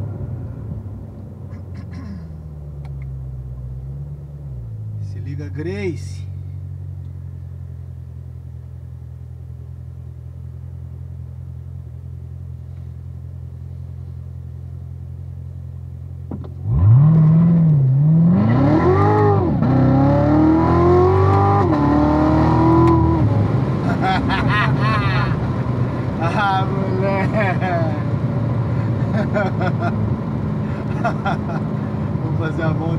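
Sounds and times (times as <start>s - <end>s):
car engine idling: 0.0s - 17.0s, 22.9s - 32.9s
car engine accelerating hard: 16.3s - 32.9s.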